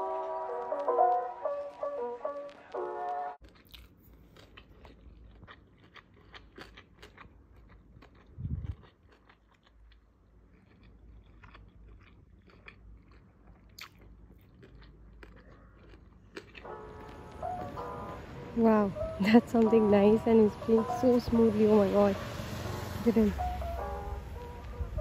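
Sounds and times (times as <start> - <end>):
person chewing food: 3.4 - 18.2.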